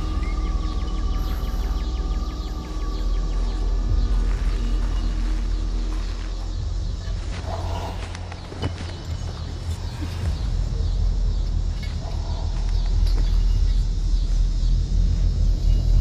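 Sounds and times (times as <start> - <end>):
deep rumbling drone: 0.0 - 16.0.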